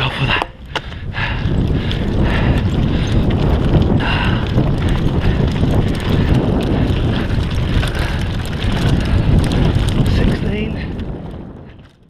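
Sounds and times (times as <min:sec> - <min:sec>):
bike rattling and knocking: 0:00.0 - 0:12.0
bike tyres rumbling on dirt: 0:00.0 - 0:12.0
wind buffeting microphone: 0:00.0 - 0:12.0.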